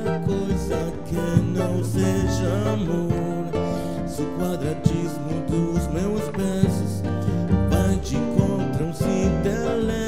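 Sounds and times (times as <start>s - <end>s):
acoustic band music: 0.0s - 10.0s.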